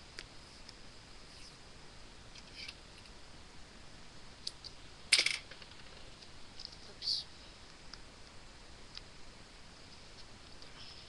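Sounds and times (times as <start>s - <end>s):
faint crackles and clicks: 0.1s - 1.6s, 5.4s - 7.0s, 7.6s - 11.0s.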